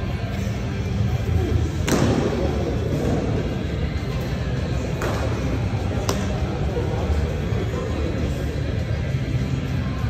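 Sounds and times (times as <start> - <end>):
background music: 0.0 - 10.0
baseball striking with sharp crack: 1.8 - 2.4, 6.0 - 6.4.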